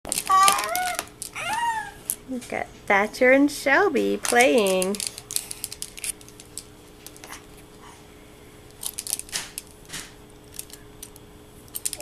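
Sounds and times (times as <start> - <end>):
plastic toys clicking together: 0.1 - 2.2, 4.2 - 7.3, 8.8 - 9.7, 10.5 - 12.0
faint steady hum: 0.1 - 12.0.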